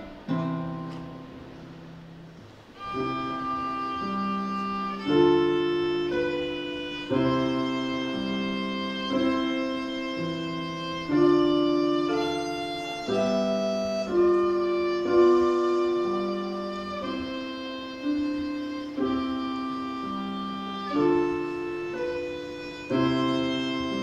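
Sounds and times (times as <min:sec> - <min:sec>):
piano chords: 0:00.0 - 0:24.0
violin bowed line: 0:02.7 - 0:24.0.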